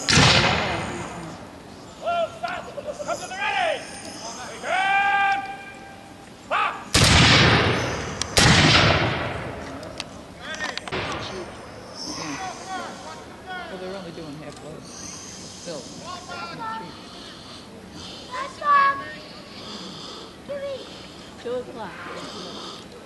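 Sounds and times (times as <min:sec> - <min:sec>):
musket shots echoing: 0:00.0 - 0:01.2, 0:06.9 - 0:09.8, 0:10.9 - 0:11.7
people shouting commands: 0:02.0 - 0:06.9.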